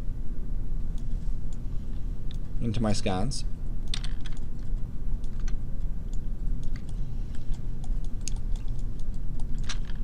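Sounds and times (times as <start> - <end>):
steady low hum: 0.0 - 10.0
computer mouse clicks: 3.9 - 10.0.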